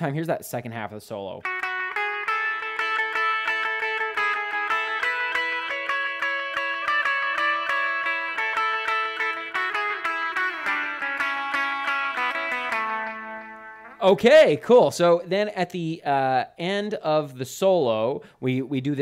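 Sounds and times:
electric guitar lead line: 1.4s - 14.2s.

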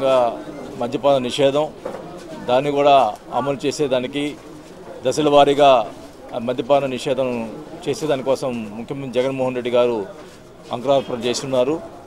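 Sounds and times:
man talking: 0.0s - 1.8s, 2.5s - 4.4s, 5.0s - 11.9s.

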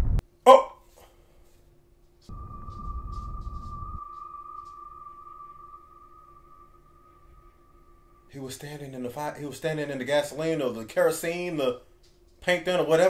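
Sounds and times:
sudden low rumble: 2.3s - 8.8s
high-pitched ringing tone: 2.3s - 10.8s.

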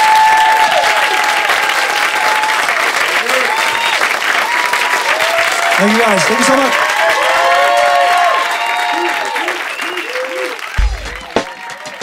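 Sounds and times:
audience applauding and cheering: 0.0s - 12.0s
hip-hop beat with heavy bass: 10.8s - 12.0s.

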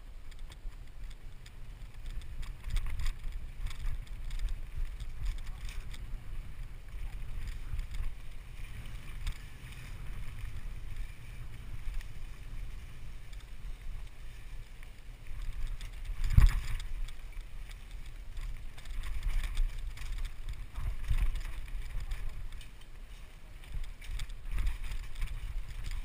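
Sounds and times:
bike clicks and rattles: 0.0s - 26.0s
wind buffeting microphone: 0.0s - 26.0s.

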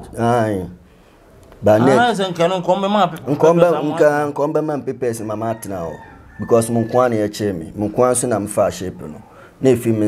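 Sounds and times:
man talking: 1.6s - 10.0s.

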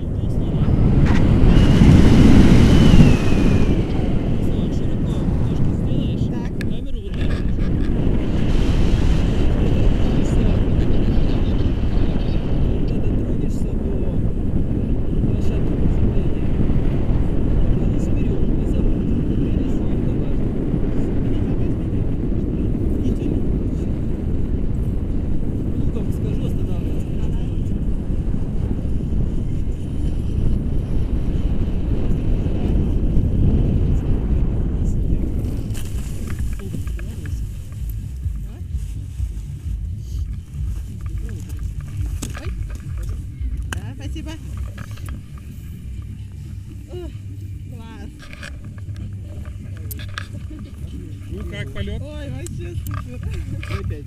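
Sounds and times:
airflow buffeting microphone: 0.0s - 54.0s.

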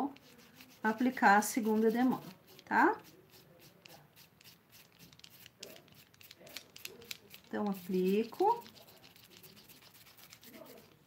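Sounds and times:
foam roller rubbing on wood: 0.1s - 11.0s.

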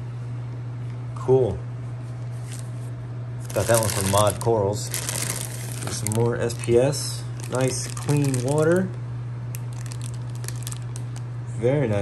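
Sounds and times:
steady low hum: 0.0s - 12.0s
plastic bag crinkling: 3.4s - 11.2s.

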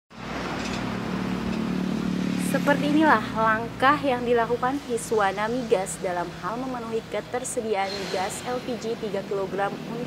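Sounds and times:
road noise: 0.1s - 10.0s
vehicle engine running: 0.2s - 10.0s.

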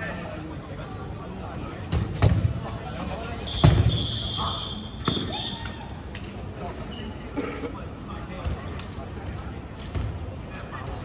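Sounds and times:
long whistle blast: 3.5s - 5.6s.

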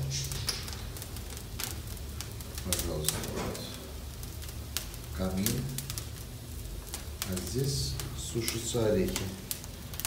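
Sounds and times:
fire hissing: 0.0s - 10.0s
twigs crackling and popping: 0.0s - 10.0s.

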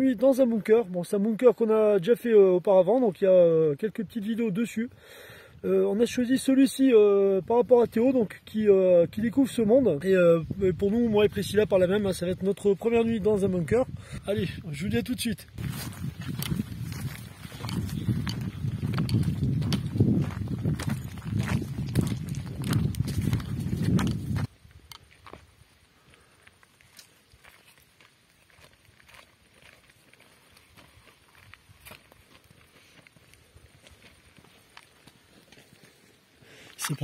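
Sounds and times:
rumble on microphone: 15.4s - 24.6s
footsteps on gravel: 15.4s - 37.0s.

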